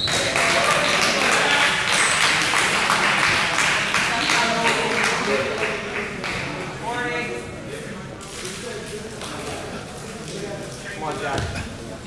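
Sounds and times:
scattered clapping: 0:00.0 - 0:06.7, 0:08.2 - 0:11.4.

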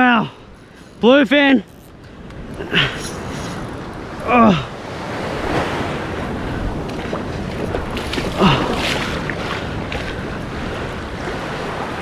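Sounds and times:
small waves washing onto beach: 0:00.0 - 0:12.0
wind on microphone: 0:01.6 - 0:12.0.

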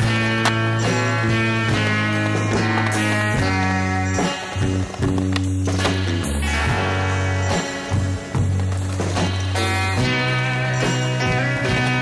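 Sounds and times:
skateboard clacks: 0:00.0 - 0:06.8, 0:07.4 - 0:10.2
rock music: 0:00.0 - 0:12.0
skateboard rolling on concrete: 0:00.0 - 0:12.0.

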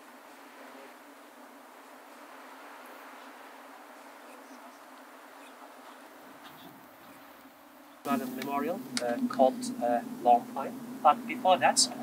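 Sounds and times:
insects buzzing: 0:00.0 - 0:12.0.

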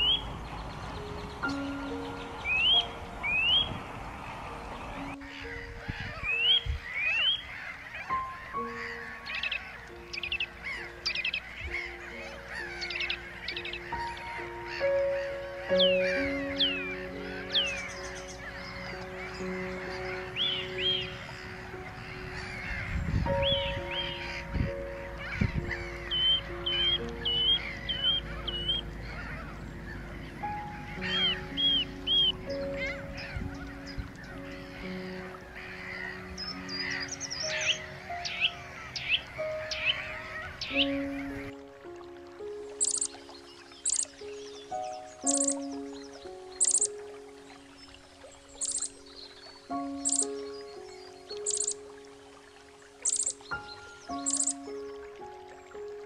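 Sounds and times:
gulls calling: 0:00.0 - 0:56.0
slow background music: 0:00.0 - 0:56.0.

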